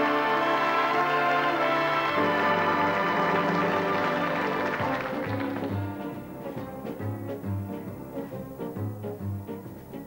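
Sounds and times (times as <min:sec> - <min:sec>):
orchestral music: 0:00.0 - 0:10.0
bass playing steady beat: 0:04.8 - 0:10.0.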